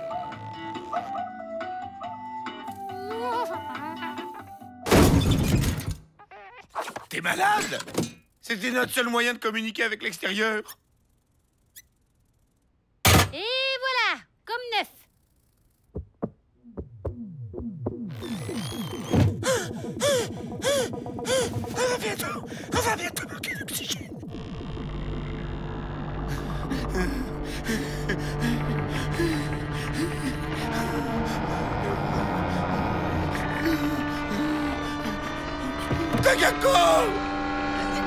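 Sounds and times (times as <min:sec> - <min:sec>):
background music: 0:00.0 - 0:04.9, 0:17.2 - 0:38.0.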